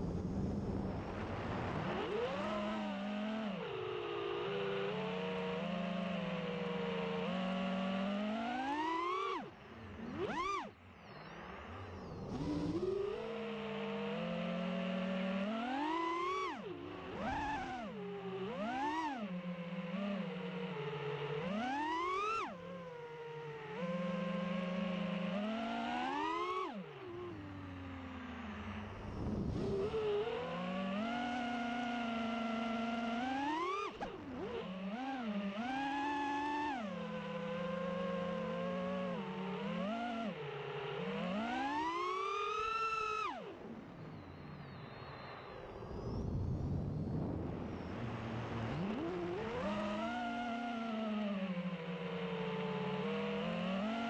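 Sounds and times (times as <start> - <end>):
drone motors whining: 0.1 - 54.0.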